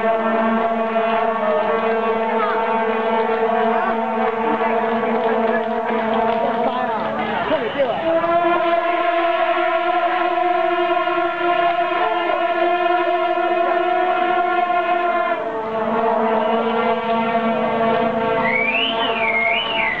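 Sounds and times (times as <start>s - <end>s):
brass horns blasting chords: 0.0s - 20.0s
high wavering tone: 10.8s - 20.0s.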